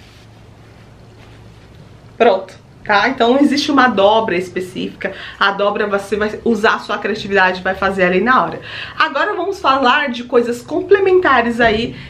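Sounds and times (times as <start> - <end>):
background hiss: 0.0 - 6.8.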